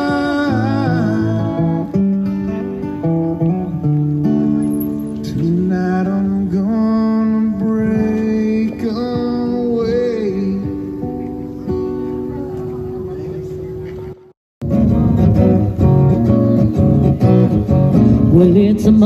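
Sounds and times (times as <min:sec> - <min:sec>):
acoustic guitar: 0:00.0 - 0:19.0.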